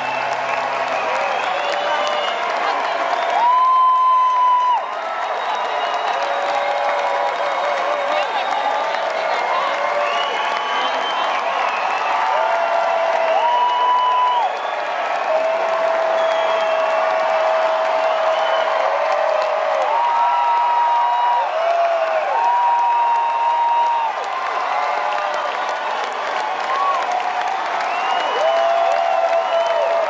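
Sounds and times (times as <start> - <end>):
audience applauding and cheering: 0.0 - 30.0.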